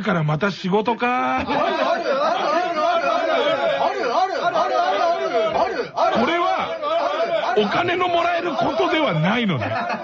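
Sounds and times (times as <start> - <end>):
people talking over one another: 0.8 - 9.9.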